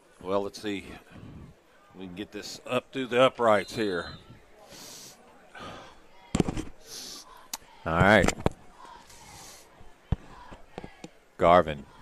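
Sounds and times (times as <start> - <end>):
soft breathy hiss: 4.5 - 6.2, 6.8 - 7.8, 8.7 - 10.6.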